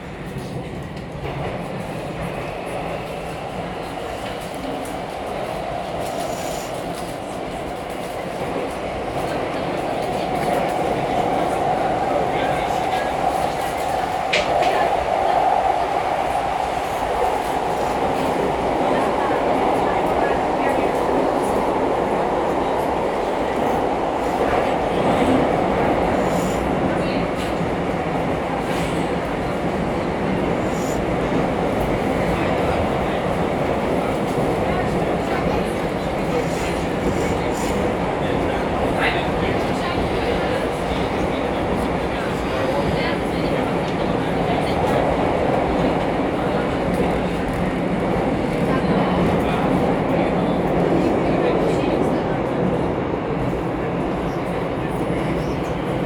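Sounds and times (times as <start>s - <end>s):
metro train rumble: 0.0s - 56.0s.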